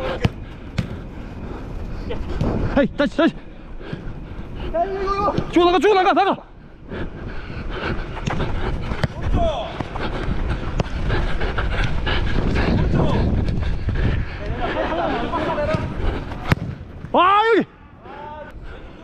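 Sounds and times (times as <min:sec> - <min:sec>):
rustle and rumble of running: 0:00.0 - 0:17.2
ball touches: 0:00.1 - 0:01.1, 0:08.2 - 0:10.0, 0:15.7 - 0:17.2
players shouting: 0:14.4 - 0:18.6.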